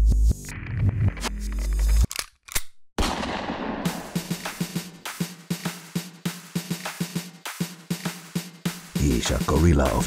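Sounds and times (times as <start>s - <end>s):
electronic music beat: 0.0s - 1.2s, 3.9s - 10.0s
sharp bangs: 3.0s - 5.8s.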